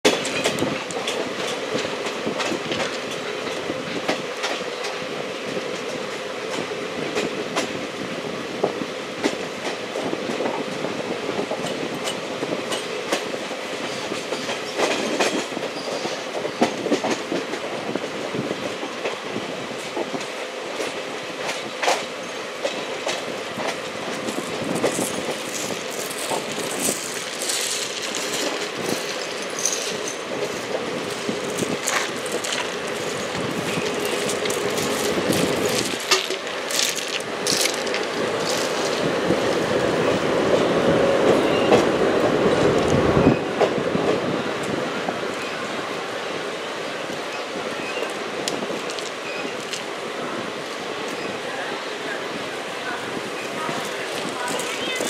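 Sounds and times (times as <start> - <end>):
train wheels rumbling: 0.0 - 55.0
wheels clicking over rail joints: 19.8 - 39.8, 47.1 - 49.9.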